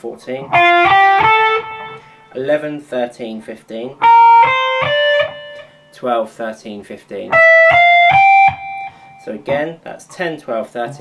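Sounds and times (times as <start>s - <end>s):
electric guitar single notes: 0.4s - 2.5s, 3.9s - 6.0s, 7.3s - 9.6s.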